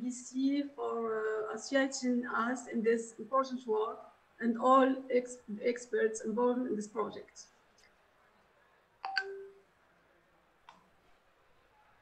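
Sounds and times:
faint click: 0:10.6 - 0:10.9.

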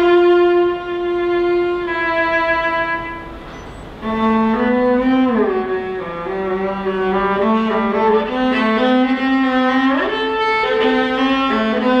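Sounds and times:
bowed cello melody: 0:00.0 - 0:12.0.

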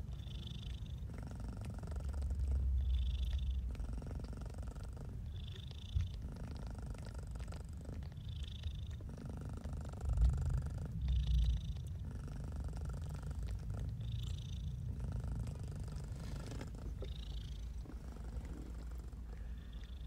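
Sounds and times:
cat purring: 0:00.0 - 0:20.0.

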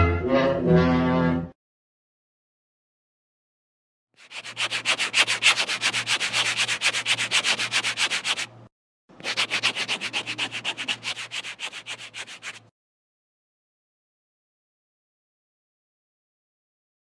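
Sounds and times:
rapid rubbing strokes: 0:04.2 - 0:08.6, 0:09.2 - 0:12.7.

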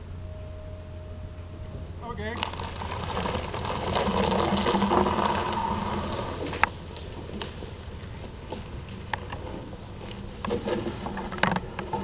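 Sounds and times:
truck engine under load: 0:01.3 - 0:12.0
rough scraping noise: 0:02.4 - 0:07.8.

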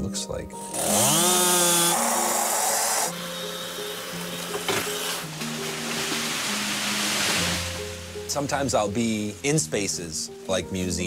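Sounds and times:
background music: 0:00.0 - 0:11.0
chainsaw cutting wood: 0:00.6 - 0:07.6
falling tree rushing noise: 0:04.1 - 0:09.4.

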